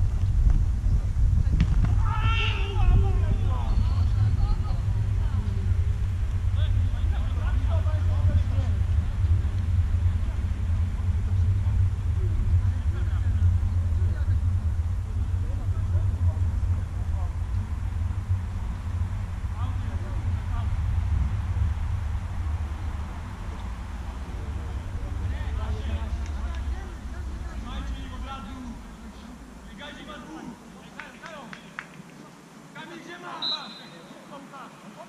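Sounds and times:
low rumble: 0.0 - 30.8
distant players calling out: 1.9 - 4.9.

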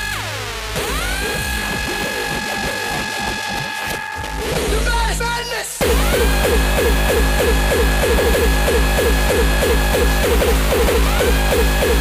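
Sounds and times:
hardcore electronic music: 0.0 - 12.0.

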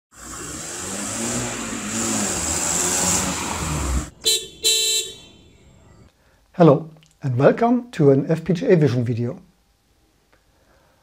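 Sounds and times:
car engine running: 0.2 - 6.0
car horn toots: 4.1 - 6.0.

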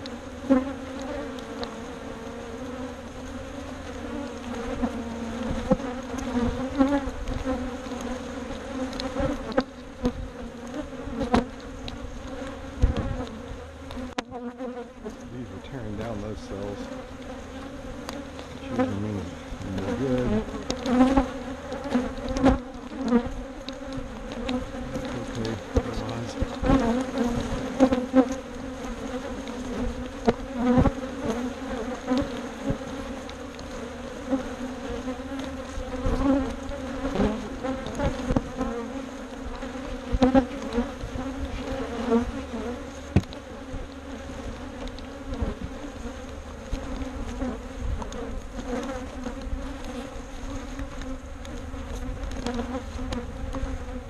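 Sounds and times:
honey bees buzzing: 0.0 - 54.0.

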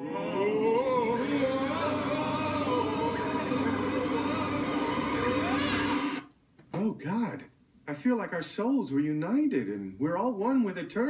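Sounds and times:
man's rising and falling vocal sound: 0.0 - 6.2
electronic drone with warbling sweeps: 0.2 - 6.2.

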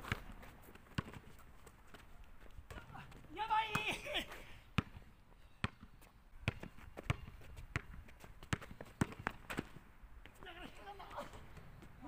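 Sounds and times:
basketball bouncing on hard court: 0.9 - 1.2, 4.8 - 5.0, 6.4 - 9.8.

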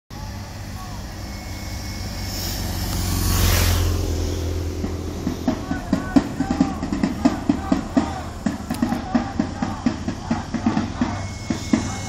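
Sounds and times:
motorcycle passing by: 0.6 - 8.8.

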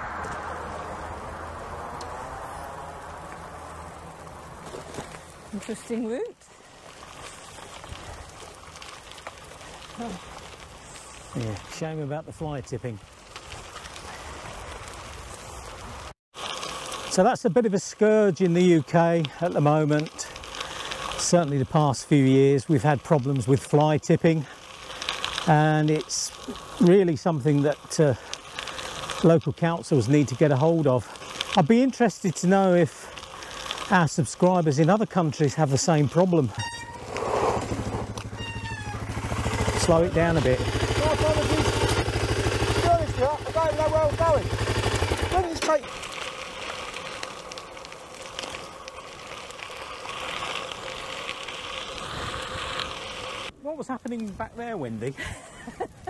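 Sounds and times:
bicycle tyres crunching on gravel: 0.0 - 56.0
motorcycle engine running slowly: 36.5 - 53.5
brief high-pitched squeal: 36.6 - 37.2, 38.4 - 39.0.

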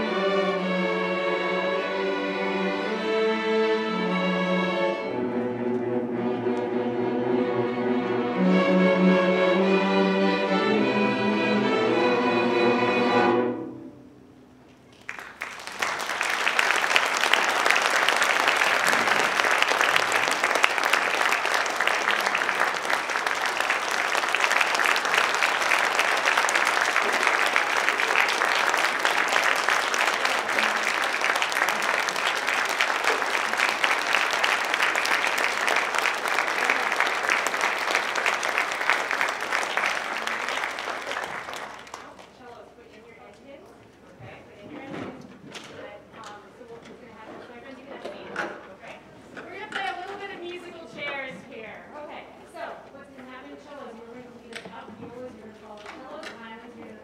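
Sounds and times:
audience applauding: 14.9 - 42.3.

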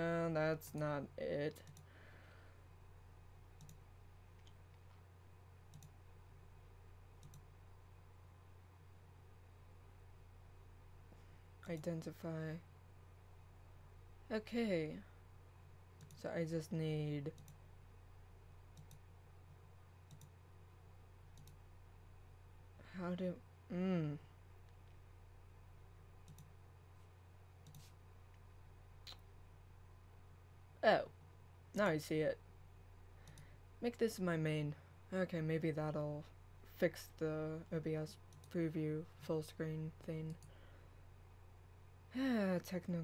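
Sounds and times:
low steady hum: 0.0 - 43.0
computer mouse clicks: 1.6 - 1.9, 3.6 - 5.0, 5.7 - 6.0, 7.2 - 7.6, 16.0 - 16.2, 17.3 - 17.6, 18.7 - 20.4, 21.3 - 21.6, 26.2 - 26.6, 27.6 - 28.4, 33.2 - 33.5, 38.2 - 38.6.

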